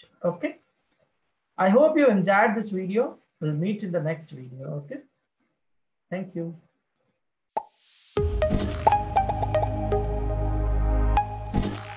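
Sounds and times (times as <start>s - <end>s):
jingle with deep bass: 8.2s - 11.8s.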